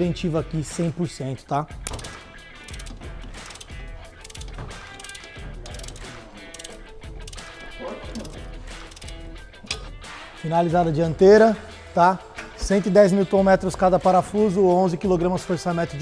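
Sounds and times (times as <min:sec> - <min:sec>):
background music: 0:00.0 - 0:16.0
ratcheting torque wrench clicking: 0:01.8 - 0:10.0.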